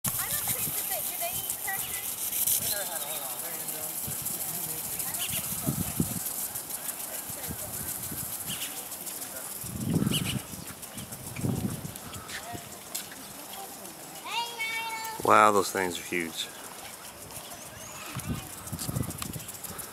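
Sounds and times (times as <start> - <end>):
sprinkler spraying water: 0.0 - 19.9
people talking faintly: 0.2 - 15.3.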